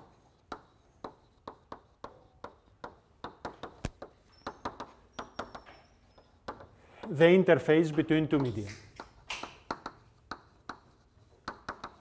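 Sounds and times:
chalk tapping on blackboard: 0.0 - 12.0.

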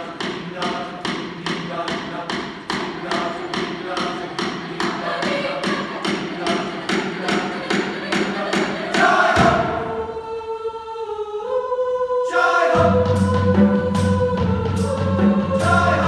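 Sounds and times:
choir singing: 1.7 - 16.0.

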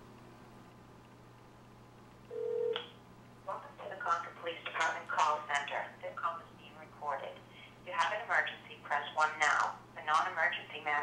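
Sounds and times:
phone line beep: 2.3 - 2.8.

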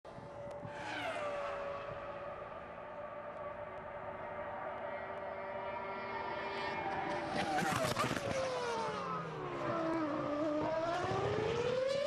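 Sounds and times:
racing car engine at high revs: 0.1 - 12.0.

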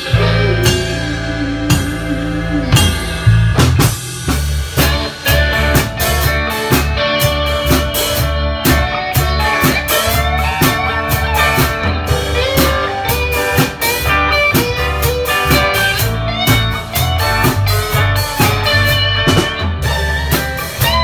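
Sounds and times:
bass line: 0.0 - 21.0
drum beat: 0.0 - 21.0
electric guitar with bent notes: 0.0 - 21.0.

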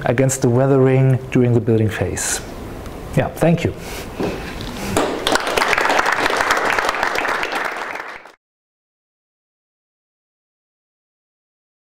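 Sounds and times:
audience applauding: 5.0 - 8.4.

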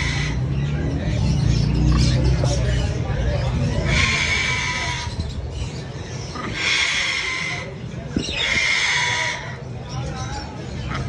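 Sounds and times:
parrot chicks rasping calls: 0.0 - 11.0.

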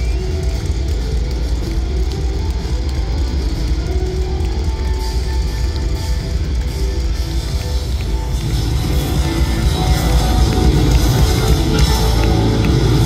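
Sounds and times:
guitar: 0.0 - 13.0
live rock band through pa: 0.0 - 13.0.

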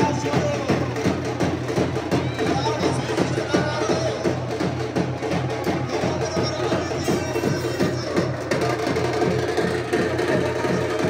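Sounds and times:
loud fast drumbeat: 0.0 - 11.0.

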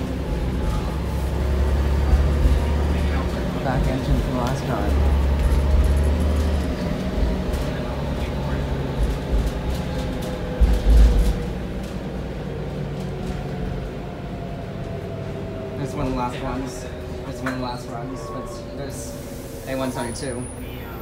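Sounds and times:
bus diesel engine drone: 0.0 - 21.0
road rumble: 0.0 - 21.0.

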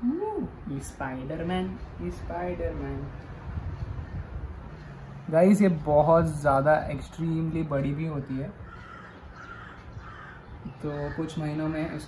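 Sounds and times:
faint crow caws: 3.9 - 5.2, 8.6 - 12.0.

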